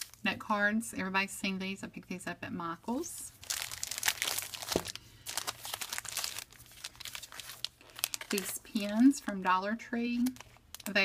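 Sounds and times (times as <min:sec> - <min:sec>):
plastic packaging crinkling: 0:03.3 - 0:09.5, 0:10.1 - 0:11.0.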